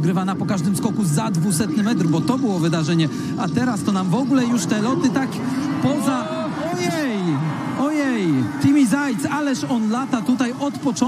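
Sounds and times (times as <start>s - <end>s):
man exclaiming excitedly: 5.8s - 8.4s.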